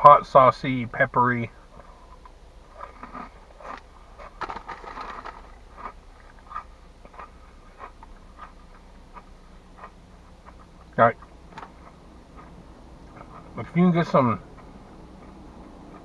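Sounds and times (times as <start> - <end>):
chewing crunchy snacks: 1.8 - 13.6
foil bag crinkling: 3.0 - 6.4.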